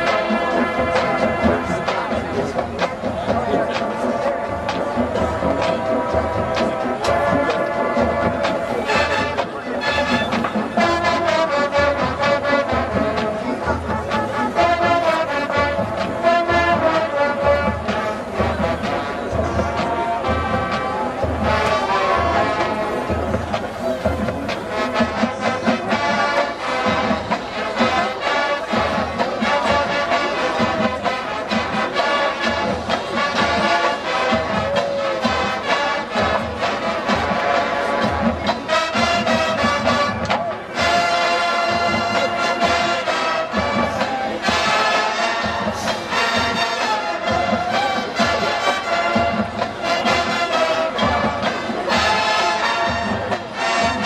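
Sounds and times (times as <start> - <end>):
brass section playing: 0.0 - 54.0
marching drumline beat: 0.0 - 54.0.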